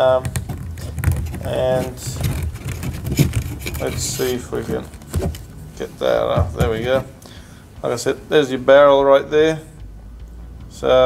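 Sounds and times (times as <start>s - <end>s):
plastic clicks and scrapes: 0.3s - 5.6s.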